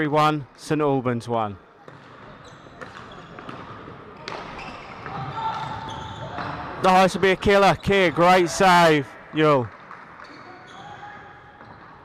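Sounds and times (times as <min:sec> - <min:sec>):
shoes squeaking on wooden floor: 0:01.9 - 0:08.5.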